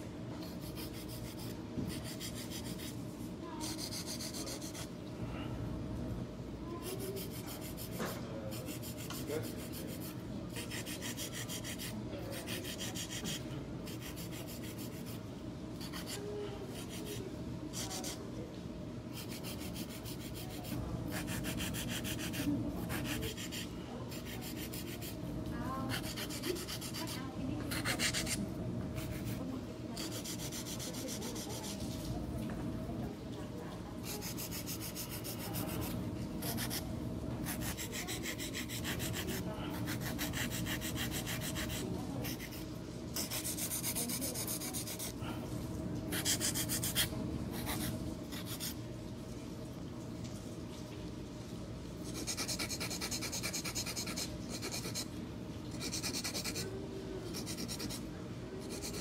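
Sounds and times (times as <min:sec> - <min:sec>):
low steady hum: 0:00.0 - 0:59.0
nail file rasping: 0:00.4 - 0:03.0, 0:03.6 - 0:04.9, 0:06.8 - 0:15.2, 0:15.8 - 0:18.2, 0:19.2 - 0:25.2, 0:25.9 - 0:28.4, 0:29.0 - 0:29.4, 0:30.0 - 0:32.0, 0:34.0 - 0:36.8, 0:37.4 - 0:42.6, 0:43.2 - 0:45.1, 0:46.1 - 0:48.8, 0:52.1 - 0:55.1, 0:55.8 - 0:56.6, 0:57.3 - 0:58.0, 0:58.6 - 0:59.0.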